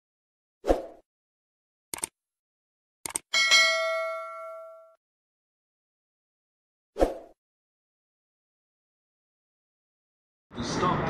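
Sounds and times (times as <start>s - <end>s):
notification bell ding: 3.4s - 5.0s.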